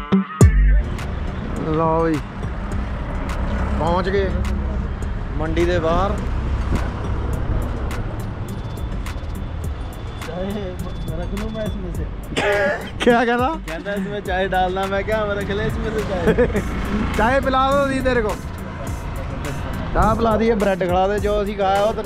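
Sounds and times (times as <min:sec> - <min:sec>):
traffic engine rumble: 0:00.7 - 0:22.0
men's voices: 0:10.2 - 0:22.0.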